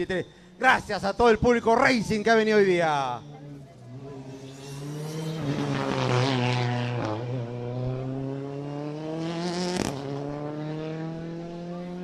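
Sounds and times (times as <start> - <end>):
rally car engine accelerating: 3.4 - 12.0.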